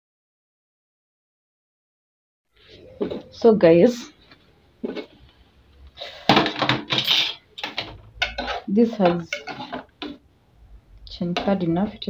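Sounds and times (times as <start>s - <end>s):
metal pot lid clattering: 6.3s - 10.2s.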